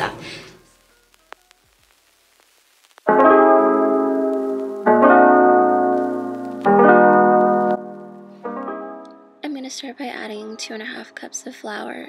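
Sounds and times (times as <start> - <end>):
piano chords: 3.1 - 9.5.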